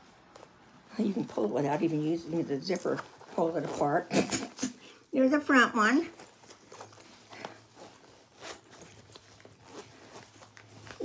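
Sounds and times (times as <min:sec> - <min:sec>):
fabric bag rustling: 0:00.0 - 0:11.0.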